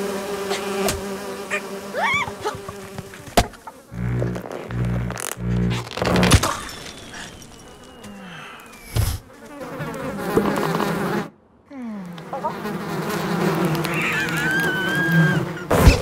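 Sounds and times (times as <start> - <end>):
cartoon insect swarm buzzing: 0.0 - 11.3, 12.2 - 16.0
wavering squeaky tones: 4.0 - 9.2.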